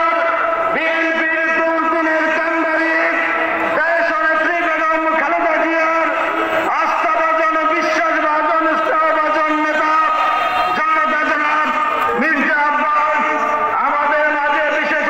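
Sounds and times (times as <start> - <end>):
man speaking over loudspeaker: 0.0 - 15.0.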